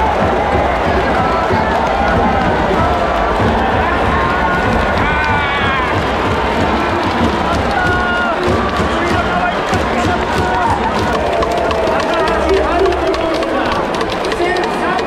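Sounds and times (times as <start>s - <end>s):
fans shouting: 0.0s - 15.0s
stadium crowd cheering: 0.0s - 15.0s.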